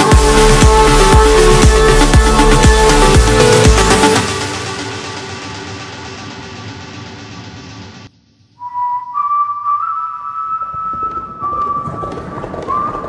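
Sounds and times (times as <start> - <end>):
electronic pop music: 0.0 - 6.8
high steady whistling tone: 8.6 - 13.0.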